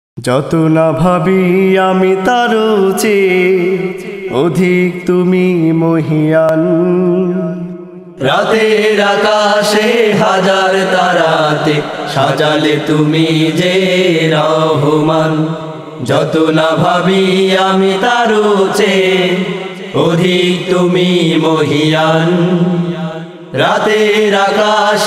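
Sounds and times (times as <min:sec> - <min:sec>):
vocal group singing: 0:00.3 - 0:25.0.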